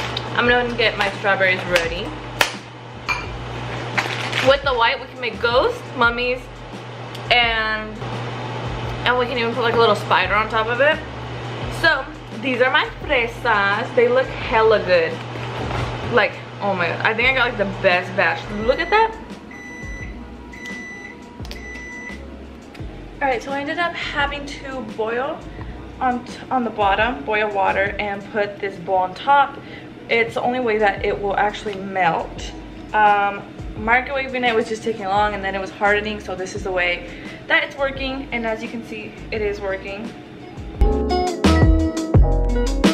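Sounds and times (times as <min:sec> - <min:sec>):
steady low hum: 0:00.0 - 0:40.8
kitchenware clinking on counter: 0:03.1 - 0:03.4
microwave oven beeping: 0:18.4 - 0:22.3.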